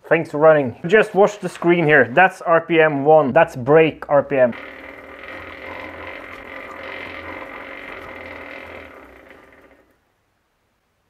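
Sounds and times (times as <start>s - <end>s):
wheel whirring: 4.3s - 10.0s.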